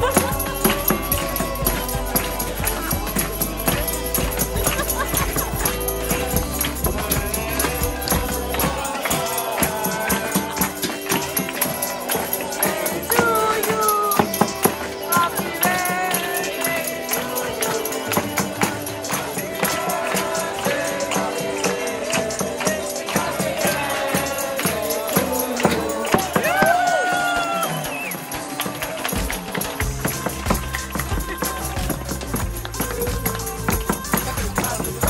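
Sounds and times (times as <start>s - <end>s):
low thumping beat: 0.0s - 11.3s
music: 0.0s - 35.0s
people clapping along: 0.0s - 35.0s
people singing and cheering: 0.0s - 35.0s
tambourine: 0.0s - 35.0s.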